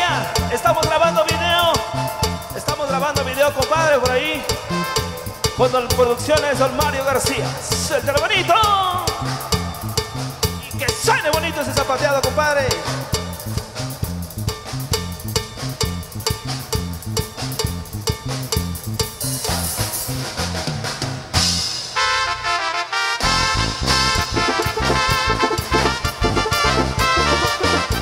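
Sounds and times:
keyboard melody: 0:00.0 - 0:20.0, 0:22.0 - 0:28.0
live band playing dance music: 0:00.0 - 0:28.0.

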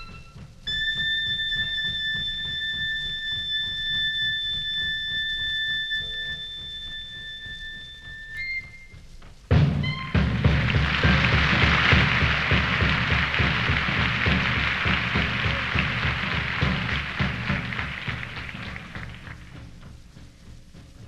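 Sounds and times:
big band playing swing: 0:00.0 - 0:21.0
tom-tom drumming: 0:00.0 - 0:21.0
clarinet long high note: 0:09.8 - 0:10.3.

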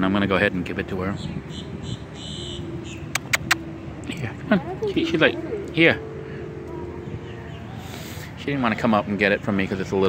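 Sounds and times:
faint outdoor background: 0:00.0 - 0:10.0
low steady hum: 0:00.0 - 0:10.0
sharp clicks: 0:03.2 - 0:03.6.

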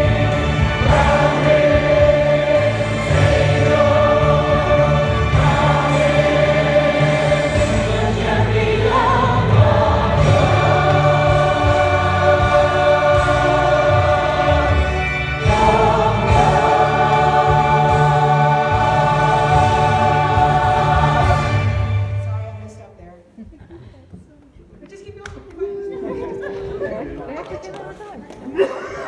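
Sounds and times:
choir singing gospel: 0:00.0 - 0:22.4, 0:25.7 - 0:27.8.

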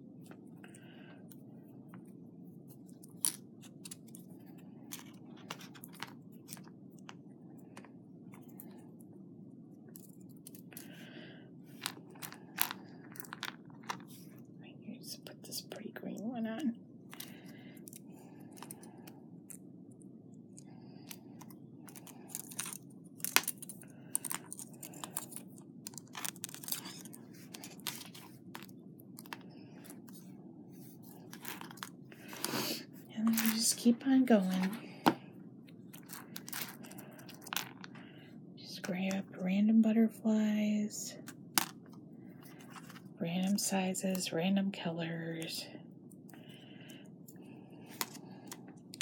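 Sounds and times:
steady low hum: 0:00.0 - 0:49.0
beads clicking and wire rustling: 0:16.2 - 0:32.5, 0:33.2 - 0:38.0.

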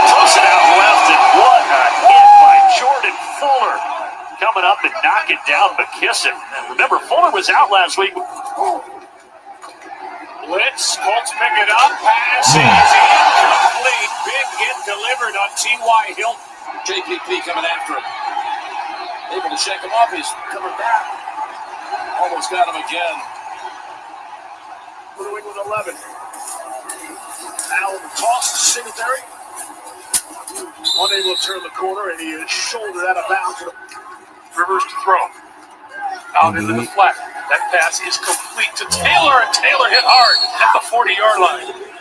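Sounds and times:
sports announcer talking: 0:10.7 - 0:16.2, 0:36.4 - 0:41.7
commentator speaking: 0:12.3 - 0:13.4, 0:36.4 - 0:37.1, 0:38.7 - 0:40.2
faint background noise: 0:12.4 - 0:13.0.

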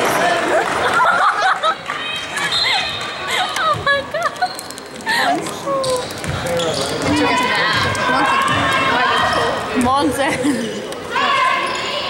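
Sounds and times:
spectators shouting: 0:07.1 - 0:09.7.

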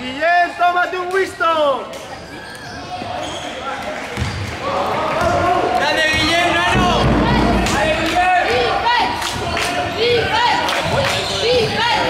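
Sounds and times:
players shouting: 0:04.6 - 0:12.0.

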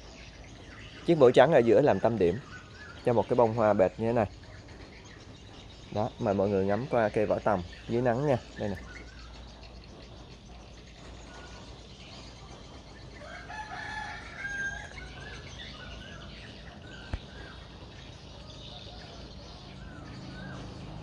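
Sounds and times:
small bird chirps: 0:00.0 - 0:21.0.

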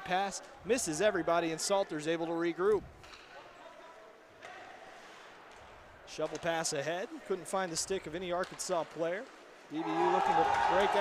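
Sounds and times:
ice rink ambience hiss: 0:04.8 - 0:05.5.

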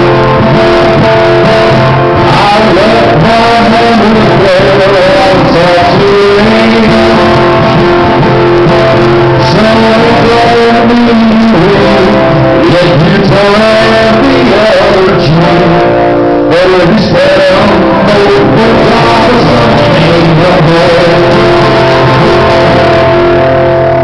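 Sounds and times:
acoustic guitar strumming: 0:00.0 - 0:24.0
man singing: 0:00.0 - 0:24.0.

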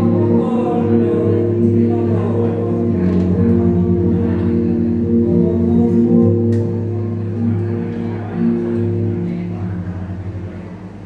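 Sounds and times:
electric guitar and band chords: 0:00.0 - 0:11.0.

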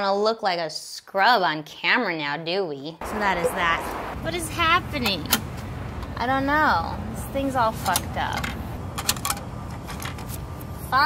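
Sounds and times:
low street noise: 0:03.0 - 0:11.0.

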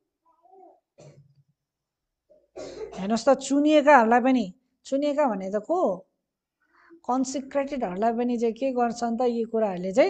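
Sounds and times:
person coughing: 0:01.0 - 0:01.4, 0:02.4 - 0:03.1.

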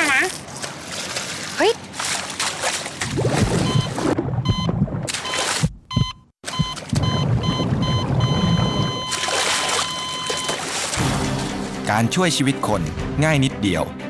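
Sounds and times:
water splashing and churning: 0:00.0 - 0:12.3
patient monitor beeping: 0:03.6 - 0:10.6.

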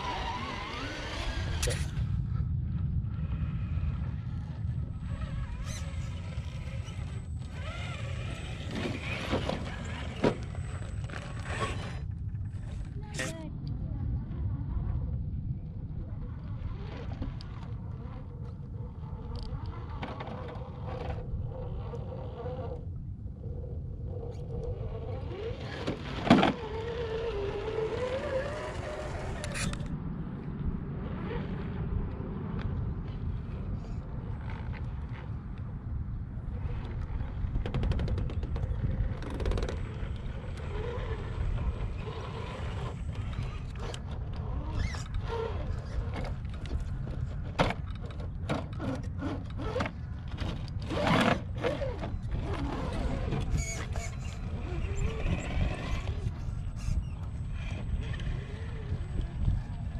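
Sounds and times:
electric motors whining: 0:00.0 - 0:02.0, 0:04.8 - 0:12.1, 0:16.6 - 0:29.9
wind rumble on microphone: 0:00.0 - 0:59.9.

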